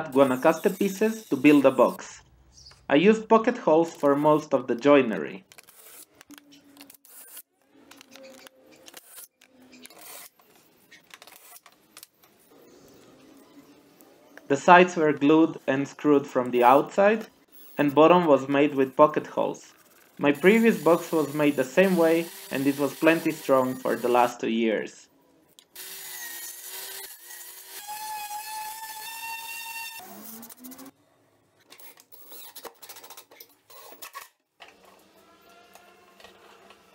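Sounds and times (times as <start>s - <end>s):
power drill motor whining: 0.1s - 2.0s, 20.4s - 24.3s, 25.8s - 30.9s, 34.7s - 36.9s
tools and wood clicking: 5.5s - 12.4s.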